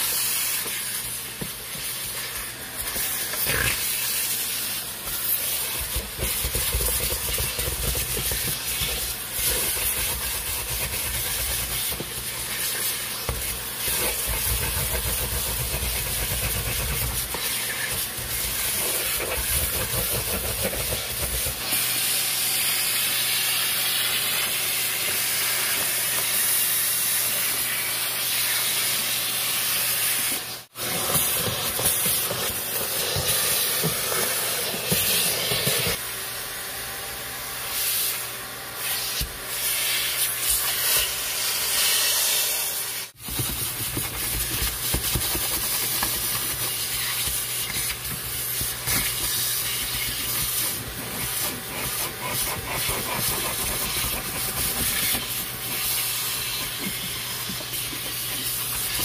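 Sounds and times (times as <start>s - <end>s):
steam cleaner hissing: 0.0s - 59.0s.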